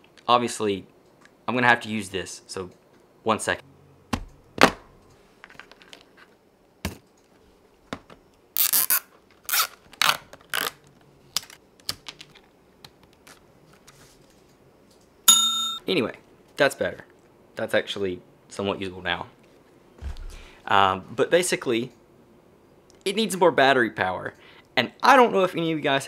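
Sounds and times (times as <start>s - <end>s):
cable ties zipping: 8.6s - 10.8s.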